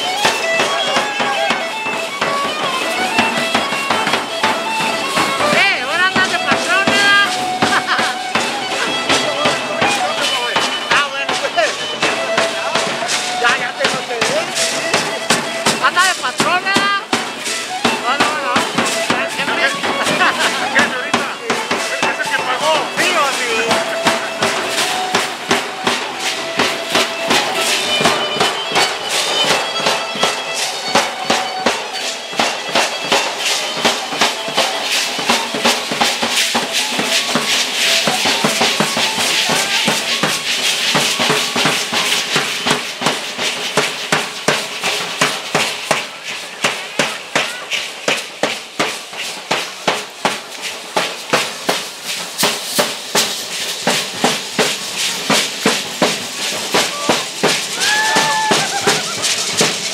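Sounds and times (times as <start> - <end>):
hand rattles shaken: 0.0 - 59.9
large drum beating: 0.0 - 59.9.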